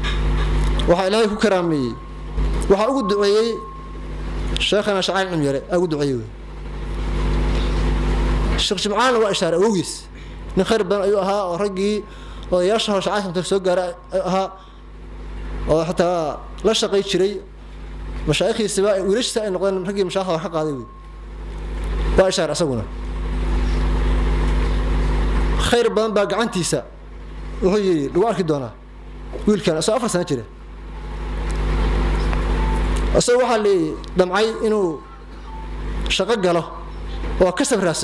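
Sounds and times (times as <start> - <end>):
steady low hum: 0.0 - 38.0
man speaking: 0.8 - 2.0, 2.7 - 3.7, 4.6 - 6.4, 8.6 - 14.6, 15.7 - 17.5, 18.3 - 20.9, 22.2 - 22.9, 25.6 - 27.0, 27.6 - 28.8, 29.4 - 30.5, 33.1 - 35.1, 36.1 - 36.8, 37.4 - 38.0
man's voice: 0.9 - 2.0, 2.7 - 3.7, 8.6 - 14.6, 25.6 - 26.9, 36.1 - 36.8, 37.4 - 38.0.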